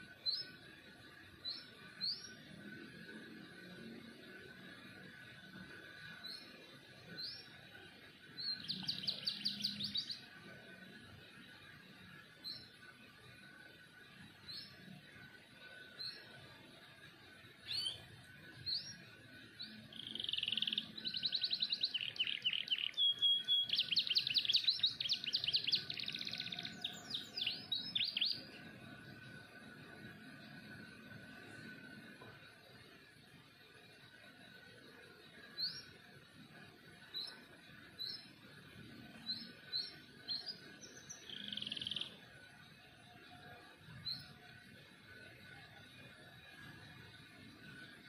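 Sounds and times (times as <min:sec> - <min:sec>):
canary singing trills: 0:08.4 - 0:10.3, 0:17.6 - 0:19.0, 0:19.6 - 0:28.5, 0:39.1 - 0:42.2.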